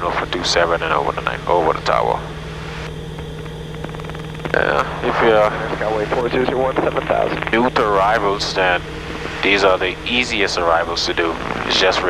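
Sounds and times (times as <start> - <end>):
man speaking: 0.0 - 2.2, 4.5 - 8.8, 9.4 - 12.0
aircraft engines droning: 0.0 - 12.0.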